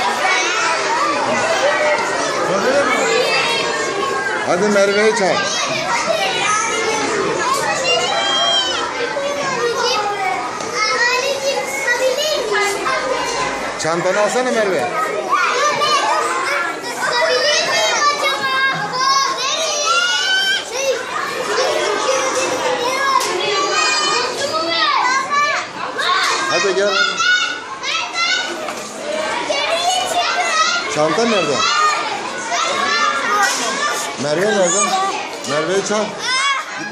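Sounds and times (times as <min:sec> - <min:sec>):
children talking and calling out: 0:00.0 - 0:36.9.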